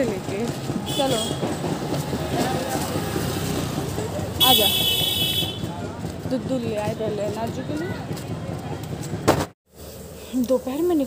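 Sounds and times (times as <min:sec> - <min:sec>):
people's voices: 0:00.0 - 0:09.2
passing traffic rumble: 0:00.0 - 0:11.0.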